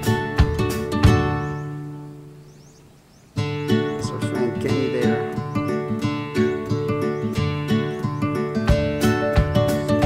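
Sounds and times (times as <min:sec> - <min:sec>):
acoustic guitar strumming: 0:00.0 - 0:02.7, 0:03.3 - 0:10.0.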